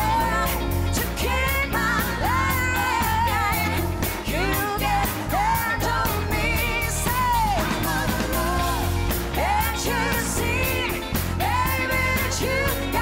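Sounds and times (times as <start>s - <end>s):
bass: 0.0s - 13.0s
drums steady beat: 0.0s - 13.0s
keyboard: 0.0s - 13.0s
woman singing: 0.0s - 13.0s.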